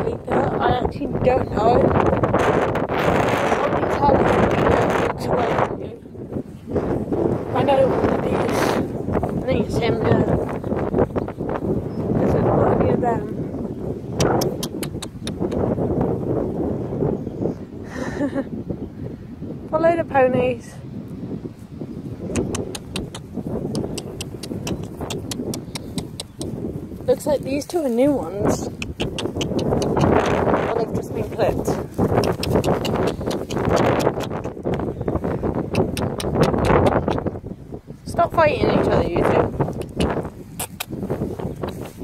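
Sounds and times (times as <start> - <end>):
wind buffeting microphone: 0.0 - 42.0
sharp clicks: 14.2 - 15.6, 22.3 - 26.6, 28.7 - 30.5, 32.0 - 34.9, 35.7 - 37.2, 39.7 - 41.0.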